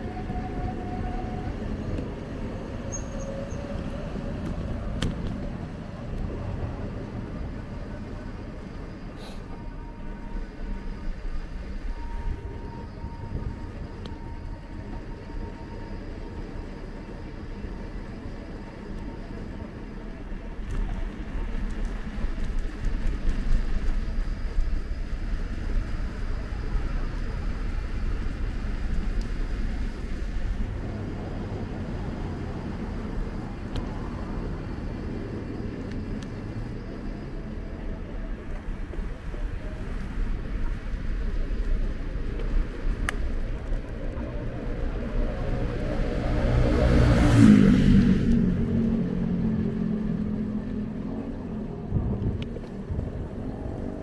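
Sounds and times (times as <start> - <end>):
bicycle road noise: 0.0 - 54.0
wind rumble: 0.0 - 54.0.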